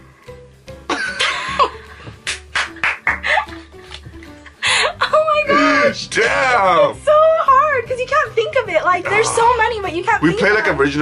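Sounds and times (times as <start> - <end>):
background music: 0.0 - 11.0
woman laughing: 0.9 - 2.1, 3.1 - 3.7, 4.4 - 5.4.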